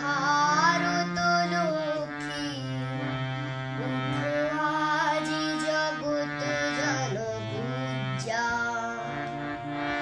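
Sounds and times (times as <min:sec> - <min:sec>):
boy singing: 0:00.0 - 0:10.0
harmonium chords: 0:00.0 - 0:10.0.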